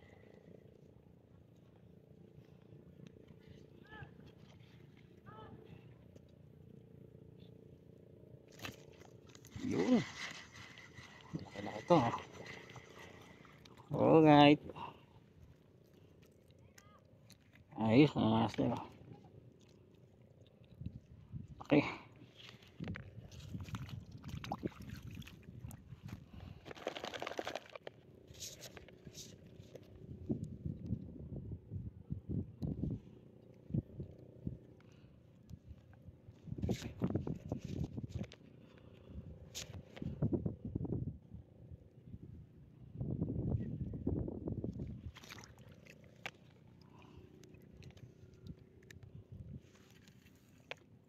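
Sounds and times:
rustling of fishing reel: 0:08.5 - 0:13.9, 0:25.9 - 0:30.2, 0:35.5 - 0:40.2, 0:46.0 - 0:51.0.

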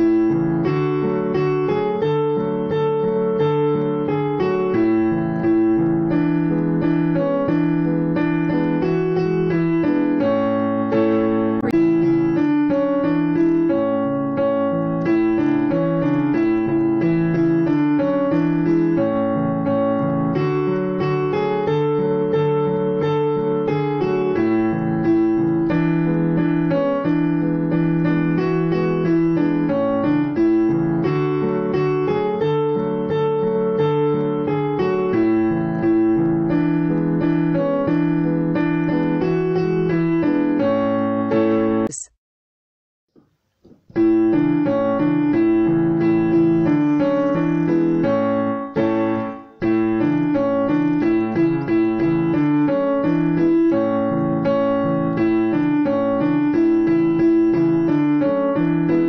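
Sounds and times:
background piano music: 0:00.0 - 0:42.0, 0:44.0 - 0:59.0.

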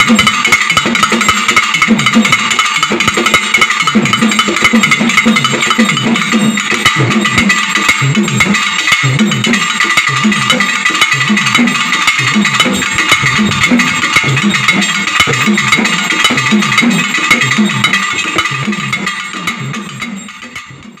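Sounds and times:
cylindrical drums played in rhythm: 0:00.0 - 0:21.0.

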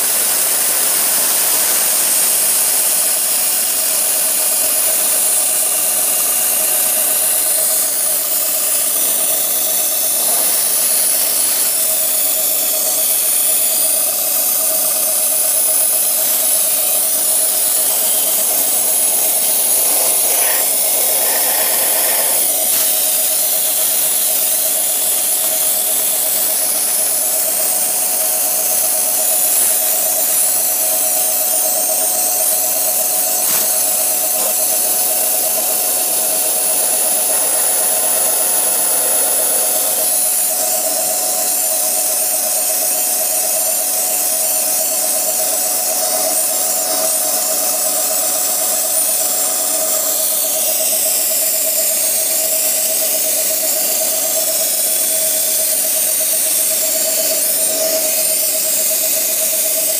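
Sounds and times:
compressed air hiss: 0:00.0 - 0:41.6
mill spindle whining: 0:00.0 - 0:59.9.

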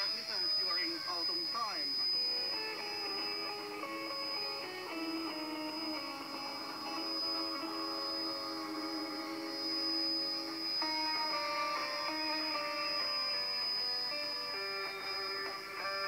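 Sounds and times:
radio music through loudspeaker: 0:00.0 - 0:16.0
steady high-pitched whistle: 0:00.0 - 0:16.0.

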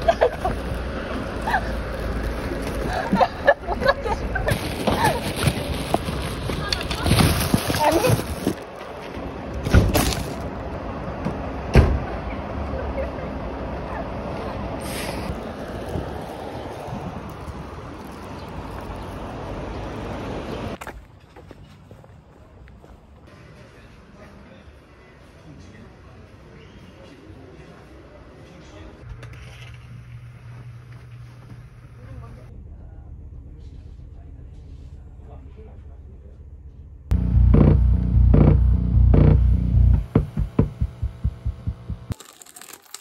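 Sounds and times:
rustling: 0:04.4 - 0:08.8.

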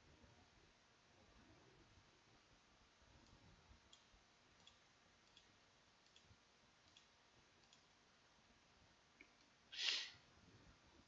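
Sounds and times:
faint evenly spaced clicks: 0:03.0 - 0:08.4.

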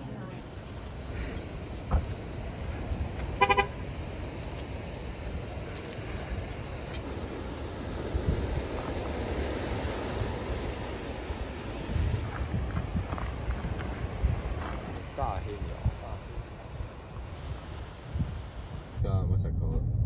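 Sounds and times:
ocean surf: 0:00.0 - 0:19.0
wind: 0:00.0 - 0:20.0
car horn toot: 0:03.3 - 0:03.8.

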